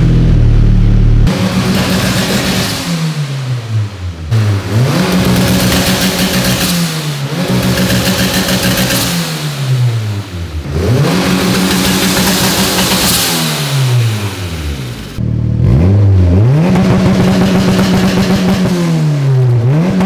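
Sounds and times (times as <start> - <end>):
turbocharged car engine revving: 0.0 - 20.0.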